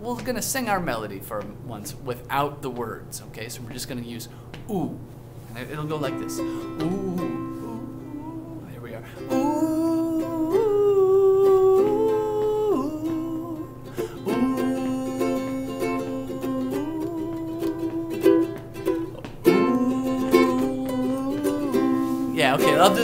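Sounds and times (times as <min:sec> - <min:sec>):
man singing wordless melody: 0:06.0 - 0:23.0
strummed string instrument: 0:09.2 - 0:23.0.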